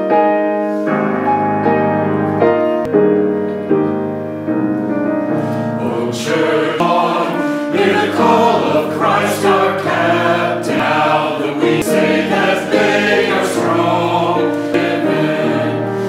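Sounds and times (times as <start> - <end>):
choir singing a hymn: 5.6 - 16.0.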